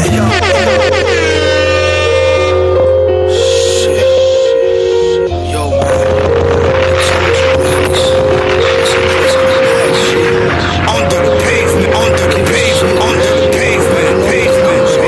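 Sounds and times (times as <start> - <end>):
hip-hop instrumental beat: 0.0 - 15.0.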